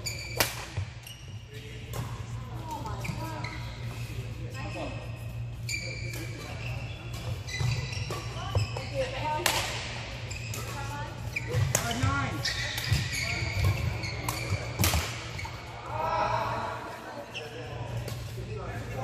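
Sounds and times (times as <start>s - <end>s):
shoes squeaking on court floor: 0.0s - 15.8s, 17.2s - 19.0s
racket hitting shuttlecock: 0.3s - 0.8s, 9.4s - 10.7s, 13.6s - 15.3s.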